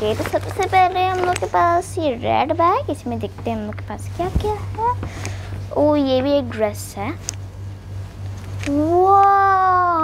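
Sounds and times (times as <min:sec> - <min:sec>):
girl's drawn-out exclamation: 0:08.7 - 0:10.0.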